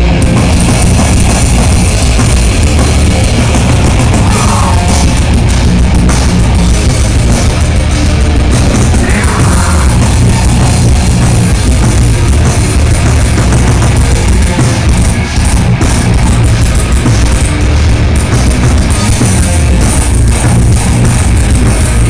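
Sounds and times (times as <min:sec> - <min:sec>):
heavy rock band playing live: 0:00.0 - 0:22.0.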